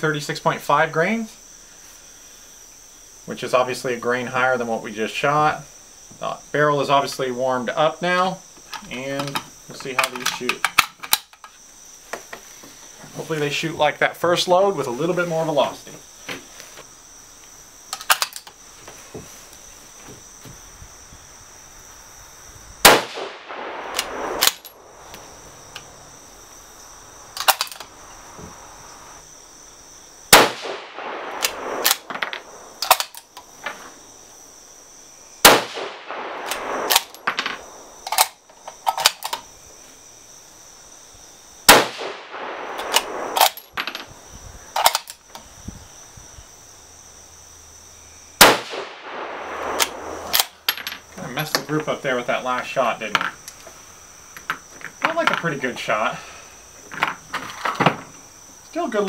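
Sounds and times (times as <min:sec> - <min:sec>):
rifle bolt metallic clicks: 0:18.0 - 0:18.5, 0:23.1 - 0:24.8, 0:27.4 - 0:27.9, 0:30.6 - 0:33.5, 0:36.1 - 0:39.4, 0:41.7 - 0:43.7, 0:44.8 - 0:45.2, 0:48.6 - 0:50.6
rifle shots: 0:22.8 - 0:25.4, 0:30.3 - 0:33.2, 0:35.4 - 0:38.4, 0:41.7 - 0:43.8, 0:48.4 - 0:50.6.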